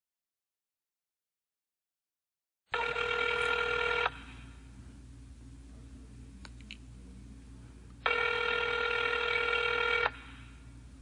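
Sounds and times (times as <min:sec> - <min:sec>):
telephone ringing: 0:02.7 - 0:04.2, 0:08.0 - 0:10.3.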